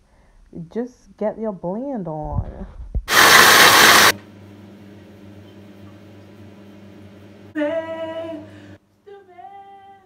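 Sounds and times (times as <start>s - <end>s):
blender running: 3.1s - 5.2s.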